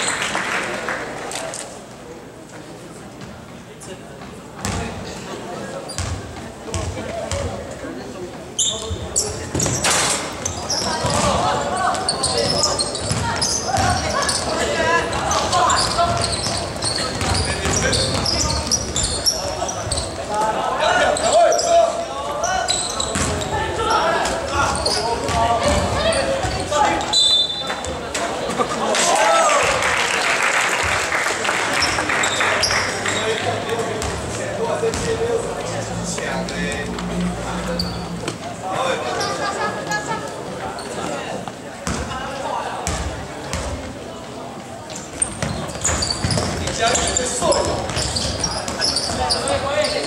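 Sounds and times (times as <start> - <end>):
people shouting and chattering: 0.0 - 50.0
sneaker squeaks: 4.3 - 5.1, 5.8 - 7.6, 8.5 - 28.1, 31.7 - 34.3, 37.6 - 39.7, 40.5 - 42.2, 44.8 - 50.0.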